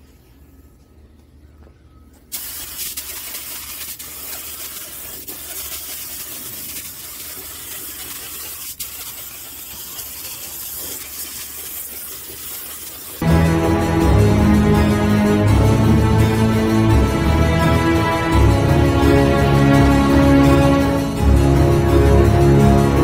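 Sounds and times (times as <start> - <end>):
paint spray gun hissing: 2.3 - 13.2.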